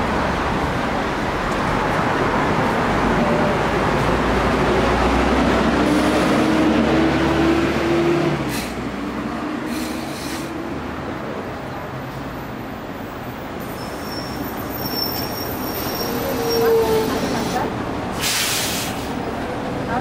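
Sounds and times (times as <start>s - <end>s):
bus engine accelerating: 0.0s - 20.0s
street traffic: 0.0s - 20.0s.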